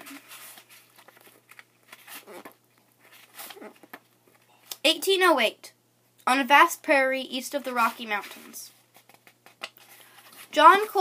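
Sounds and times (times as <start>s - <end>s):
book pages rustling: 0.0s - 4.5s, 7.7s - 11.0s.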